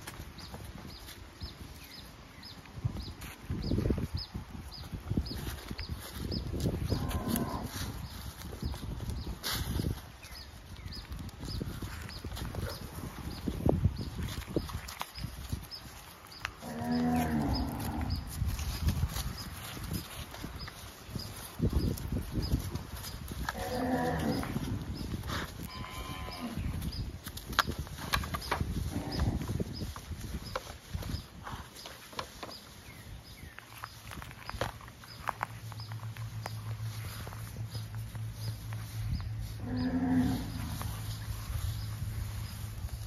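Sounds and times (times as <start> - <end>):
cattle mooing: 16.6 - 18.2, 39.6 - 40.8.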